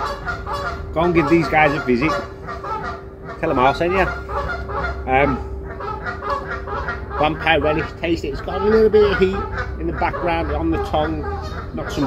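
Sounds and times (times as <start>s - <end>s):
honking bird call: 0.0s - 12.0s
steady low hum: 0.0s - 12.0s.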